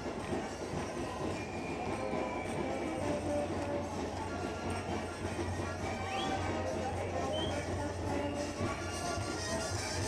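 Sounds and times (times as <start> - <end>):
faint dance music: 0.0 - 10.0
street parade crowd noise: 0.0 - 10.0.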